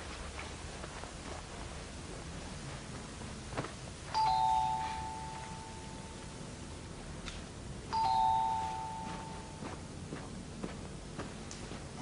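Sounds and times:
two-tone doorbell chime: 4.1 - 6.4, 7.9 - 9.8.

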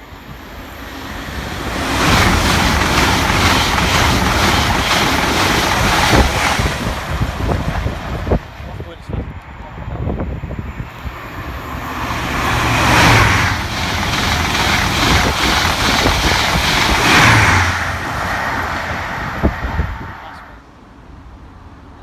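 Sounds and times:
high-speed train passing: 0.0 - 22.0.

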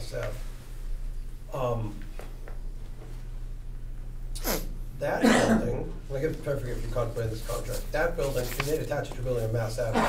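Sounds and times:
low electrical hum: 0.0 - 10.0
person snorting through nose: 4.4 - 4.7.

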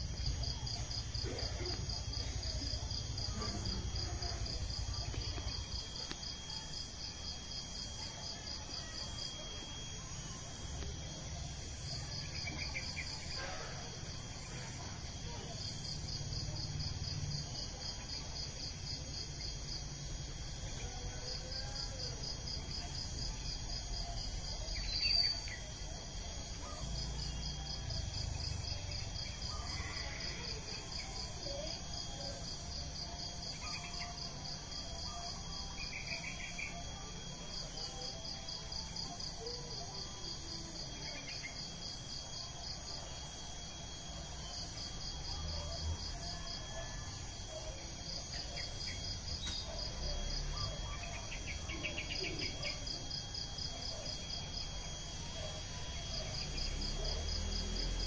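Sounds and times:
insects trilling: 0.0 - 58.0
steady high buzz: 0.0 - 58.0.

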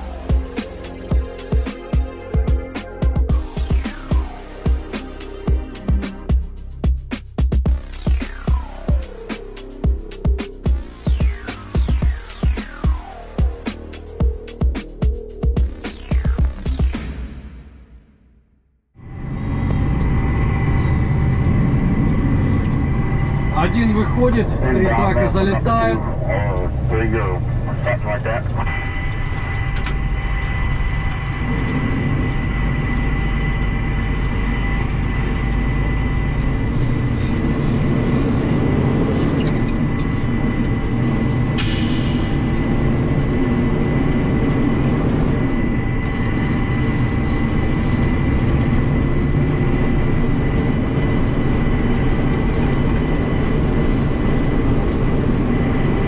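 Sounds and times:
diesel truck engine running: 0.0 - 17.3, 19.0 - 56.0
thin steady whine: 19.0 - 38.0.

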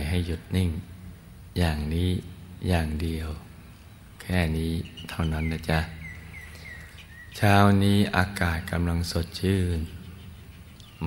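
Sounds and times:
man speaking: 0.0 - 0.9, 1.5 - 3.5, 4.2 - 6.0, 7.4 - 10.0.

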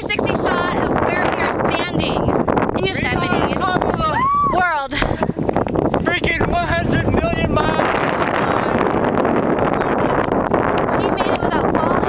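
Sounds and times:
wind noise on microphone: 0.0 - 12.0.

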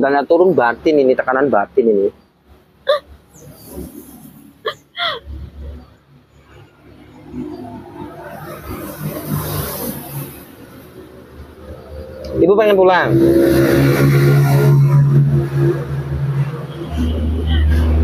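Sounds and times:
vehicle engine: 1.9 - 18.0
woman sobbing: 2.9 - 3.2, 4.6 - 5.4.

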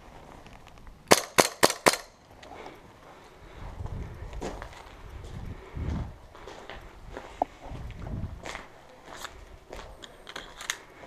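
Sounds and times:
airsoft pistol shots: 1.1 - 2.2.

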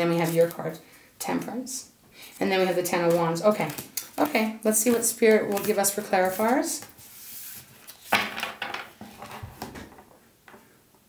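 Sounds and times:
cards being shuffled: 0.1 - 1.5, 2.3 - 8.5.

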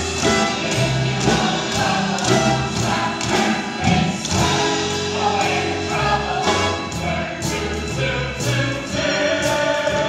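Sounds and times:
ensemble singing with accompaniment: 0.0 - 10.0.

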